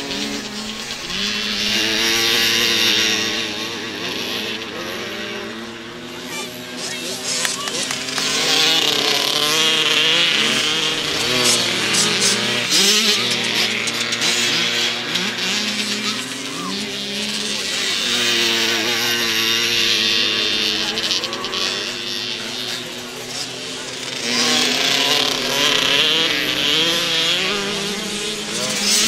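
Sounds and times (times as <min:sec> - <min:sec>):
motocross bikes racing past: 0:00.0 - 0:29.0.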